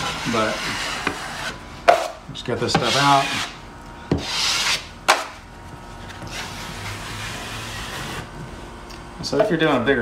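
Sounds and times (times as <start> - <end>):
taping knife scraping: 0.0 - 1.6, 4.2 - 4.9, 6.2 - 8.3.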